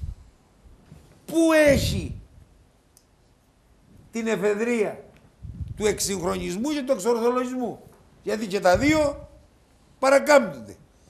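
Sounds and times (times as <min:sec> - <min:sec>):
man speaking: 0:01.3 - 0:02.2, 0:05.8 - 0:09.4, 0:10.0 - 0:10.8.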